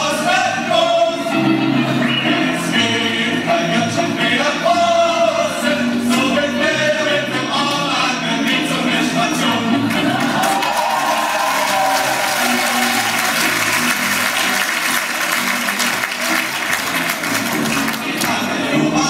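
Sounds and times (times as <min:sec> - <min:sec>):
men singing a cappella: 0:00.0 - 0:10.4, 0:17.9 - 0:19.0
audience applauding and cheering: 0:09.8 - 0:18.5.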